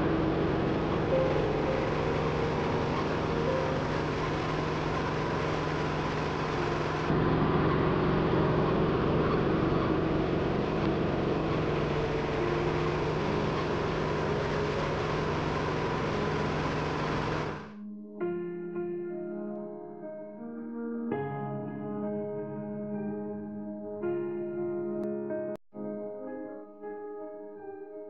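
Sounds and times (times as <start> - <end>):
grinding mill running: 0.0 - 17.7
low engine hum: 0.0 - 17.7.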